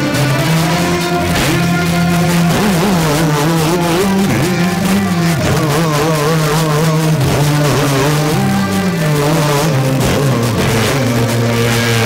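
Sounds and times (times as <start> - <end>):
music from car radio: 0.0 - 12.0.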